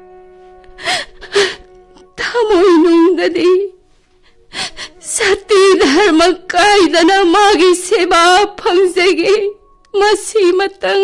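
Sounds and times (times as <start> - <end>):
held chord of background music: 0.0 - 11.0.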